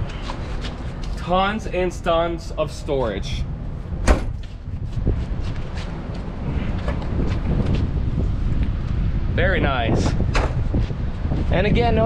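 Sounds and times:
wind rumble on microphone: 3.1 - 12.0.

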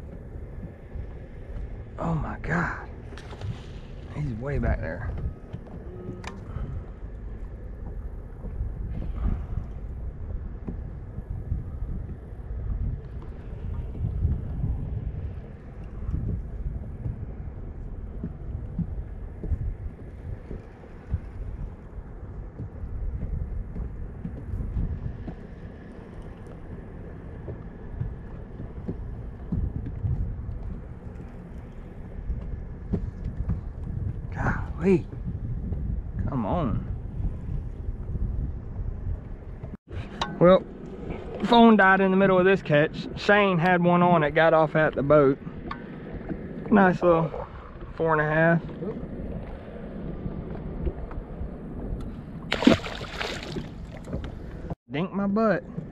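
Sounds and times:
wind buffeting microphone: 0.0 - 55.9.

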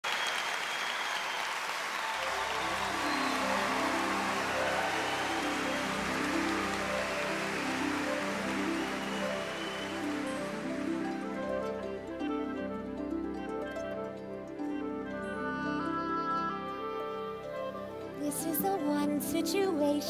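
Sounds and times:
audience applause: 0.0 - 14.6
orchestra playing soft chords: 2.2 - 20.0.

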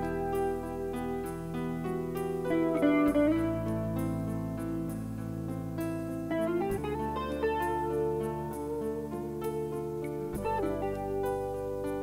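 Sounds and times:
electric guitar solo: 0.0 - 5.0, 6.2 - 12.0.

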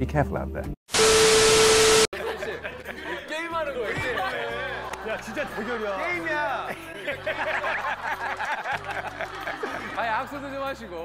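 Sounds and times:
laughter: 2.2 - 10.4.

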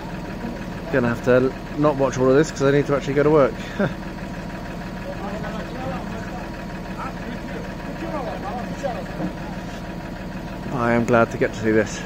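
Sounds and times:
faint voices: 0.0 - 12.0
loader crane unloading pallets: 0.0 - 12.0
truck diesel engine idling: 0.0 - 12.0.

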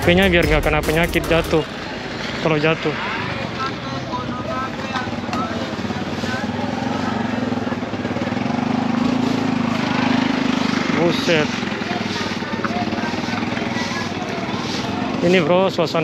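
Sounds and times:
motorcycle engine running: 0.0 - 16.0
people's voices: 0.0 - 16.0.

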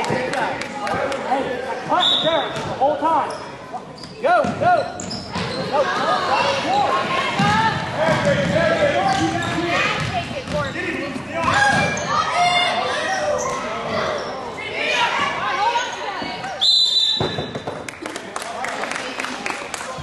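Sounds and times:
sneakers squeaking: 1.8 - 6.6, 7.3 - 17.8.

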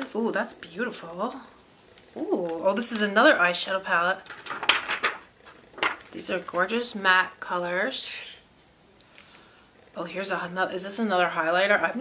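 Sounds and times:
packaging rustling and knocking: 4.2 - 6.7.

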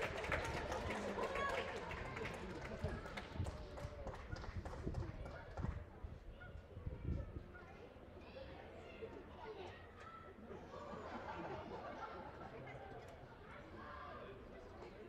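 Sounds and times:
voices chattering: 0.0 - 15.0.

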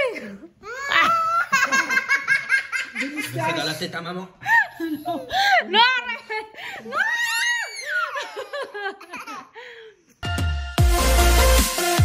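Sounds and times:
young children laughing: 0.8 - 3.6, 6.4 - 9.6.

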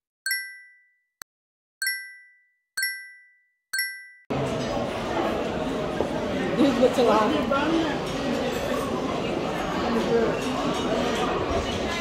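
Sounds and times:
bell-like chime dings: 0.3 - 1.1, 1.8 - 4.3.

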